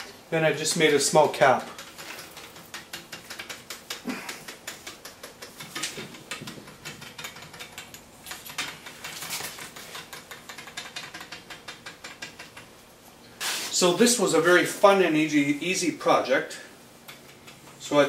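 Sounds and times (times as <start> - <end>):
wooden toys clicking on pole: 0.7 - 13.4, 17.0 - 17.9.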